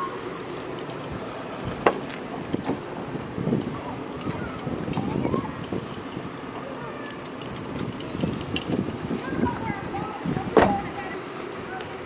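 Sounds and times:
faint voices talking: 0.0 - 12.0.

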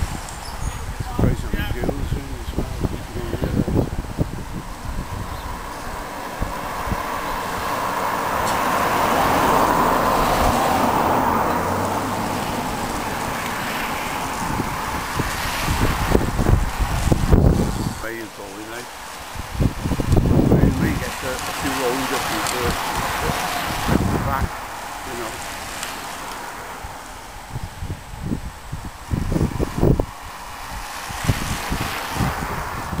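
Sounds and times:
faint outdoor hiss: 0.0 - 33.0
road vehicle passing: 0.0 - 33.0
wind buffeting microphone: 0.0 - 33.0.

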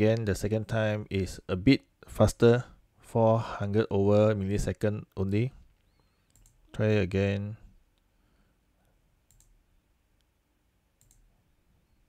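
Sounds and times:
faint mouse clicks: 5.7 - 6.6, 8.8 - 9.6, 11.0 - 11.3.

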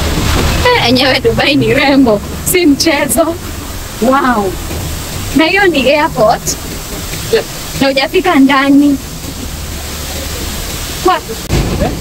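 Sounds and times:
low thump: 0.0 - 2.6, 4.5 - 8.4
steady rushing noise: 0.0 - 12.0.

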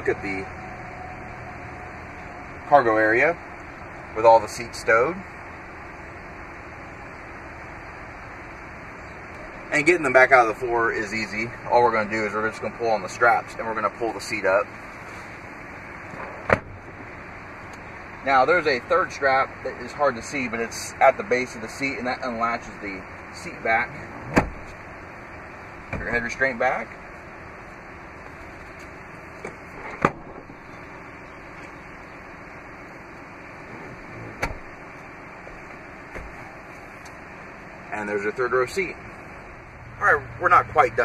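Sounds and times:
steady background noise: 0.0 - 41.0
steady low hiss: 0.0 - 41.0
car seat clunk: 16.1 - 16.8, 24.2 - 24.8, 29.4 - 30.6, 34.2 - 34.8
car seat latching clicks: 24.2 - 24.7, 34.3 - 34.7.

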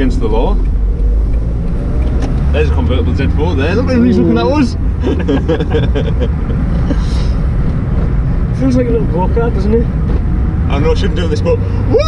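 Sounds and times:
car engine and road rumble: 0.0 - 12.0
people laughing: 3.9 - 7.2.

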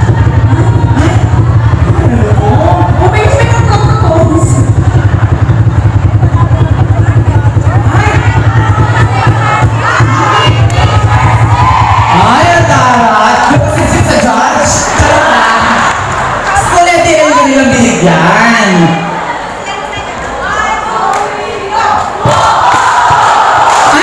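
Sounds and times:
fast low beat: 0.0 - 18.4
crowd cheering: 0.0 - 24.0
crowd shouting and chanting: 0.0 - 24.0.

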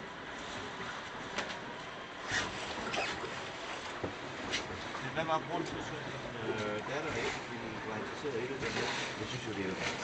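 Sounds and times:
rushing noise of sailboat under way: 0.0 - 10.0.

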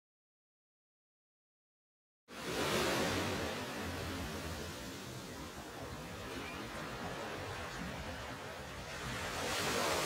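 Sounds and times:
surf washing onto beach: 2.3 - 10.0.

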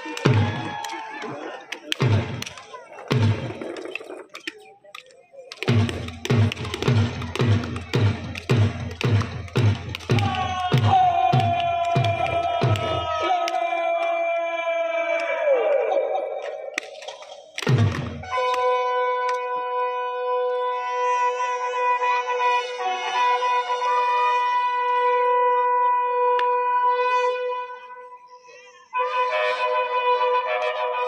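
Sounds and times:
deep march thumps: 1.9 - 3.6, 5.6 - 13.2, 17.6 - 18.3.

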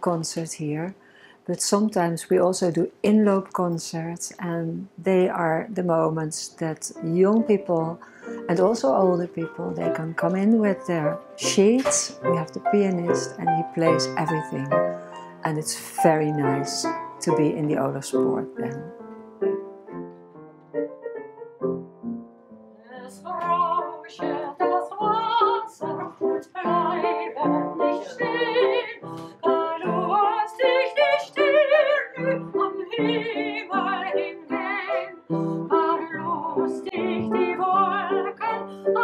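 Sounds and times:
woman singing classically: 1.5 - 14.8, 15.4 - 18.9, 22.9 - 39.0
upright piano: 6.5 - 39.0.

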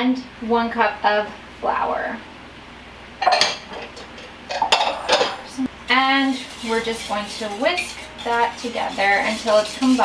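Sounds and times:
bowls and utensils clattering: 3.2 - 5.5, 6.2 - 10.0.

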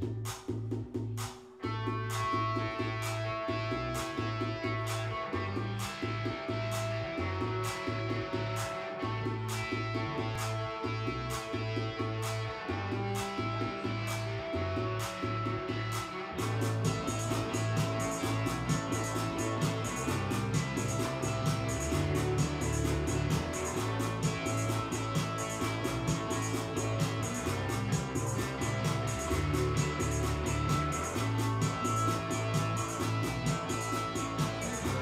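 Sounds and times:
bass line: 0.0 - 35.0
drum beat: 0.0 - 35.0
guitar: 0.0 - 35.0
held chords: 1.6 - 35.0.

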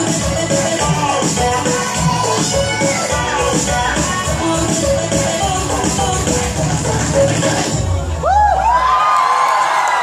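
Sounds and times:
dance music bass: 0.0 - 8.9
audience cheering and whooping: 8.0 - 10.0.

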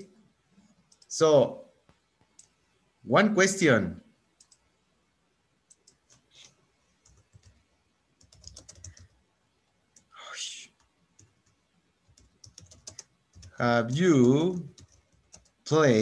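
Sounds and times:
keyboard typing: 0.8 - 1.1, 4.4 - 4.6, 5.7 - 7.6, 8.2 - 9.2, 10.8 - 15.6
mouse clicks: 1.9 - 2.6.

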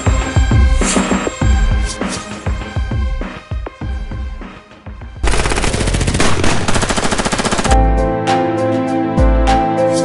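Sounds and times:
machine-gun fire: 5.2 - 7.8.

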